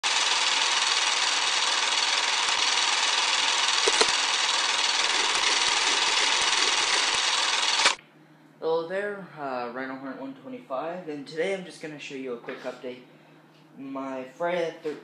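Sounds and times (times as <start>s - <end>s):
film projector hiss and crackle: 0.0s - 8.0s
loud click: 3.8s - 4.2s.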